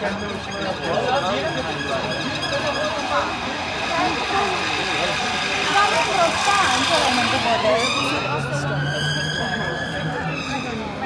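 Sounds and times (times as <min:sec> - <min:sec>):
siren rising in pitch: 0:00.0 - 0:10.8
children chattering: 0:00.0 - 0:11.0
traffic noise: 0:00.0 - 0:11.0.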